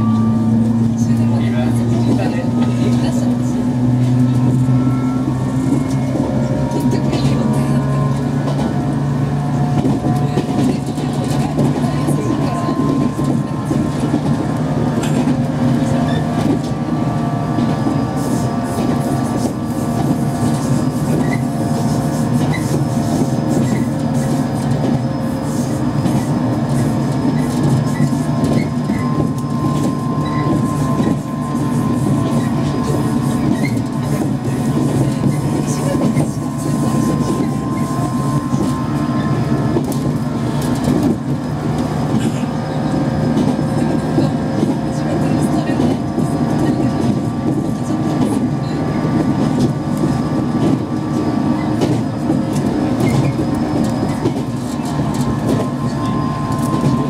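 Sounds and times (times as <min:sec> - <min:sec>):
train wheels clattering on rails: 0:00.0 - 0:57.0.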